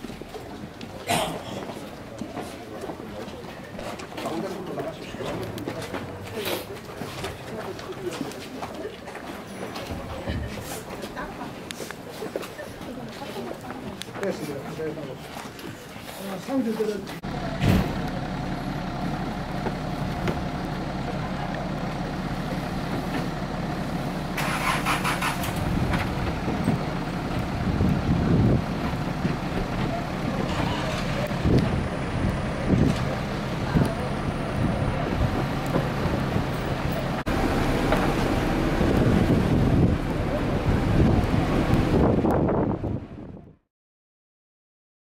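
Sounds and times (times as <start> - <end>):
bus diesel engine idling: 0.0 - 42.2.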